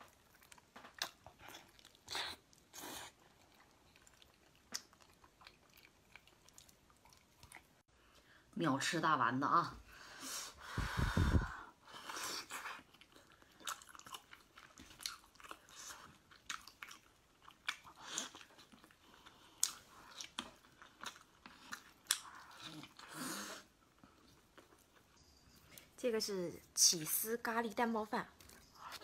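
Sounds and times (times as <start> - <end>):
close-up chewing and biting: 0.0 - 7.8, 12.4 - 23.2.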